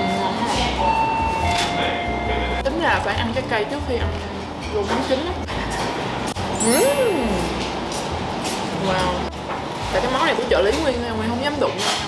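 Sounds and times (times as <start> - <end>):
woman speaking: 6.6 - 7.7.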